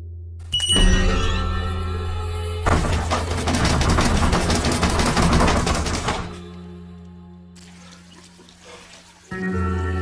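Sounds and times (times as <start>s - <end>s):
rapid rattling and knocking: 2.7s - 6.4s.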